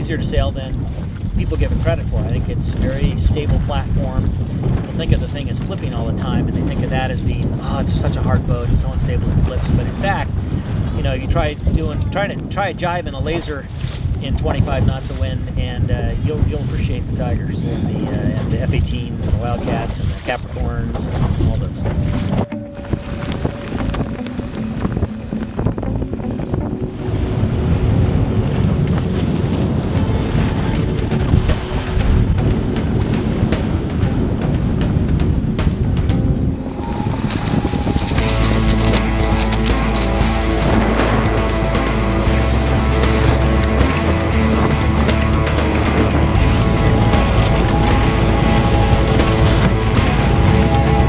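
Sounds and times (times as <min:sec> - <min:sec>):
wind on microphone: 0:00.0 - 0:51.0
water rushing and splashing: 0:17.8 - 0:51.0
music with heavy bass: 0:21.8 - 0:27.5, 0:30.0 - 0:51.0.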